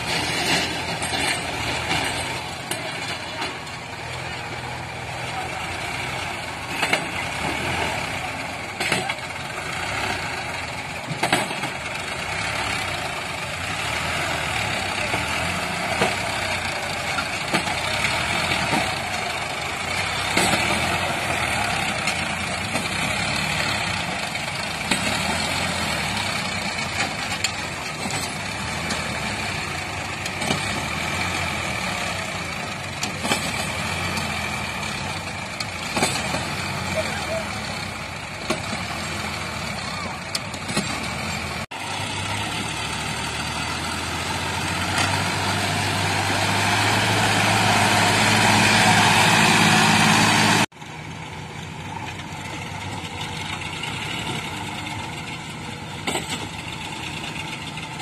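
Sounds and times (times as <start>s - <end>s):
tractor diesel engine working hard: 0.0s - 58.0s.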